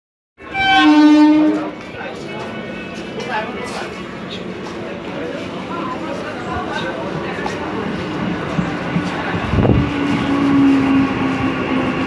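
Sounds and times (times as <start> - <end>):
train horn blast: 0.4 - 1.8
platform crowd noise: 0.4 - 12.0.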